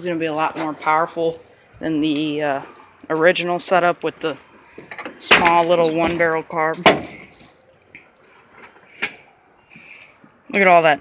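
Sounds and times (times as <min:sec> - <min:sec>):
engine parts being handled: 0:04.4 - 0:10.4.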